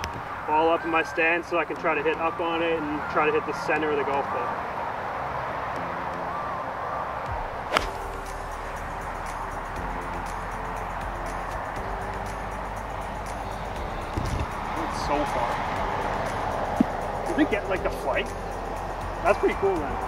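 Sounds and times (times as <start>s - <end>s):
background music with held notes: 0.0s - 20.0s
golf club striking ball: 7.7s - 8.2s.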